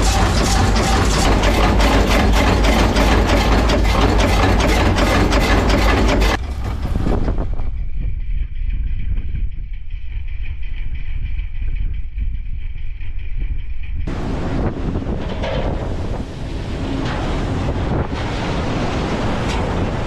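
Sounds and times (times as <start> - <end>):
sea water rushing along hull: 0.0 - 6.6, 14.1 - 20.0
boat engine rumble: 0.0 - 10.2, 14.0 - 20.0
wind buffeting microphone: 6.3 - 20.0.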